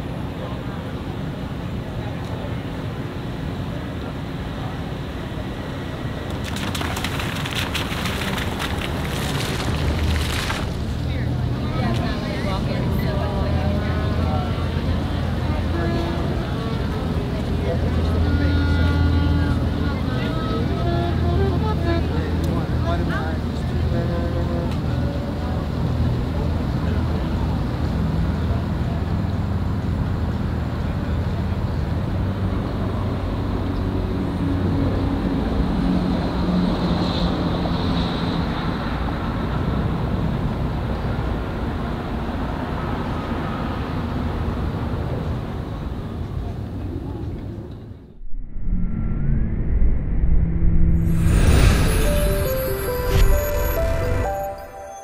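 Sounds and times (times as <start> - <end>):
distant harbour noise: 0.0 - 54.9
ferry engine rumble: 0.0 - 55.0.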